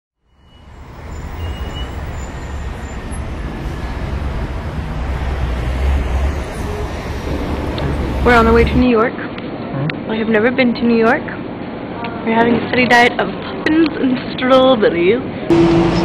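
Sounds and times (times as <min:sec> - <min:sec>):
vehicle rumble and road noise: 0:00.2 - 0:10.0, 0:15.5 - 0:16.0.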